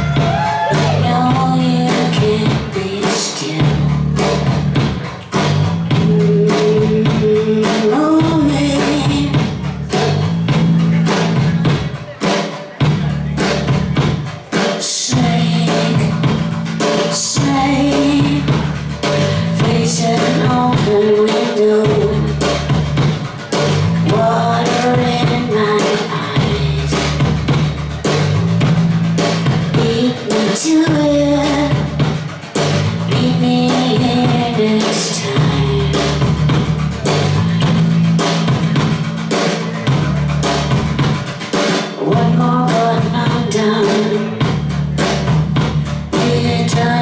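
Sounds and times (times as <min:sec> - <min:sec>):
bass guitar: 0:00.0 - 0:47.0
drums: 0:00.0 - 0:47.0.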